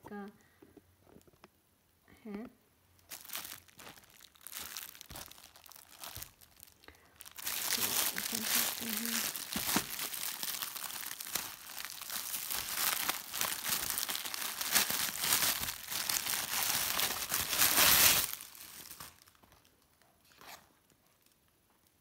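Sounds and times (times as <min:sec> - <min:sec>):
plastic wrapping crinkling: 0:02.9 - 0:22.0.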